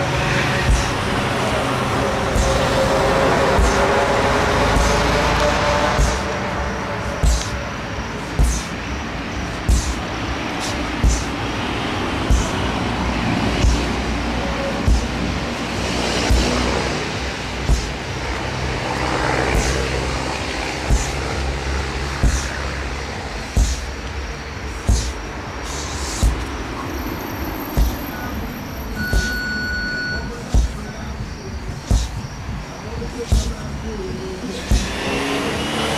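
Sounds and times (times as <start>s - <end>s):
sledgehammer striking rubber tire: 0.0s - 35.9s.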